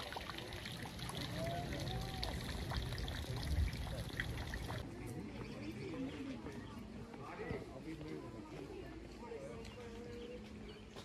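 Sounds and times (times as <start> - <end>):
background chatter of voices: 0.4 - 11.0.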